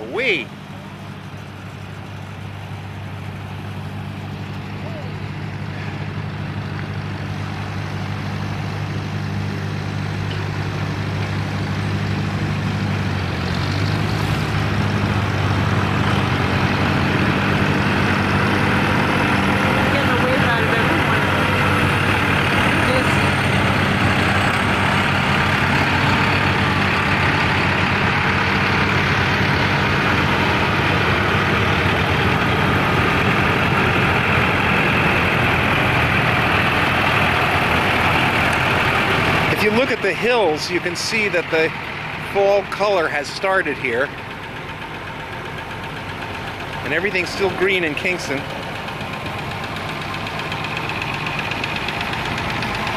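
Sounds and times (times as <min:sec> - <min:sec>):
tractor engines running: 0:00.0 - 0:52.9.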